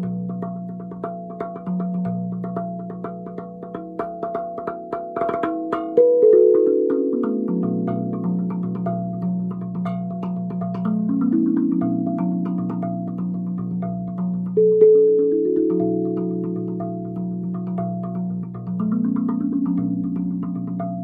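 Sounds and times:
steel tongue drum notes ringing: 3.4 - 21.0.

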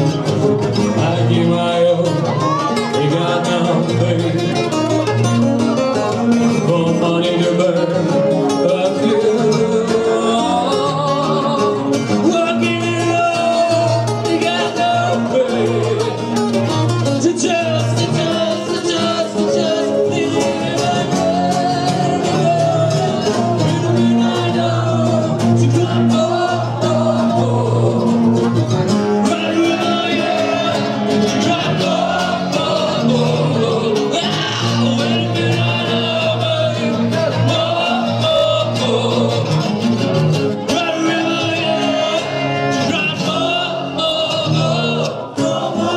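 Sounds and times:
electric guitar: 0.0 - 45.9
strummed acoustic guitar: 0.0 - 45.9
man singing into microphone: 0.1 - 39.9, 40.5 - 45.9.

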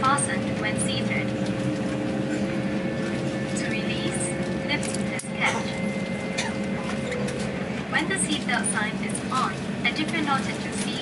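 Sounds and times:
airliner cabin hum: 0.0 - 11.0.

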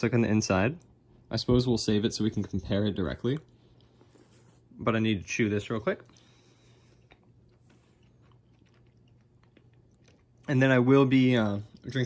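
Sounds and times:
faint chewing mouth clicks: 6.0 - 10.5.

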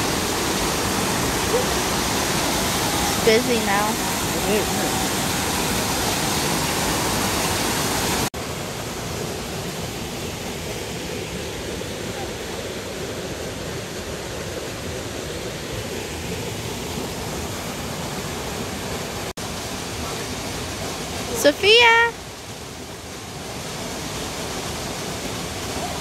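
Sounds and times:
stream rushing softly: 0.0 - 26.0
whitewater rushing over rocks: 0.0 - 26.0.

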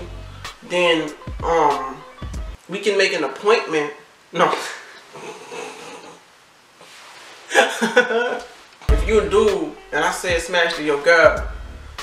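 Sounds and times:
man snorting with stifled laughter: 5.0 - 6.2.

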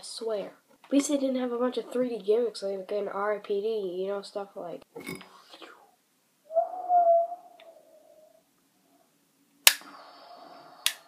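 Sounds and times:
brief pitched vocal sound: 6.5 - 8.4.

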